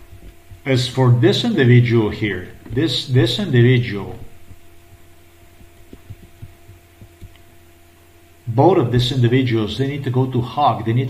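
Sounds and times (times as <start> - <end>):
steady low hum: 0.0 - 11.0
faint soft low knocks: 4.3 - 7.5.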